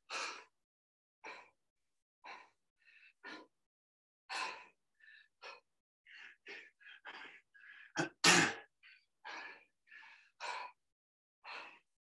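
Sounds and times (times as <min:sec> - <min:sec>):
man breathing heavily: 0:00.0 - 0:00.6, 0:01.2 - 0:01.6, 0:02.2 - 0:03.6, 0:04.3 - 0:12.0.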